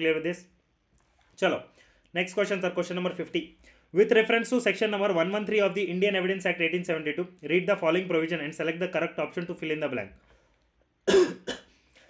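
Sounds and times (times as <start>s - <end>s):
man coughing: 11.1s - 11.8s.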